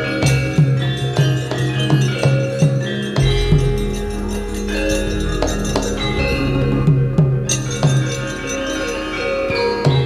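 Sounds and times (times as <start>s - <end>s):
metallophones and gongs struck: 0.0s - 10.0s
deep gong stroke ringing: 3.2s - 9.1s.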